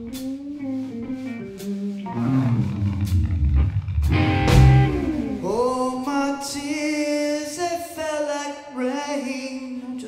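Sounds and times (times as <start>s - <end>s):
blues rock band playing: 0.0s - 5.8s.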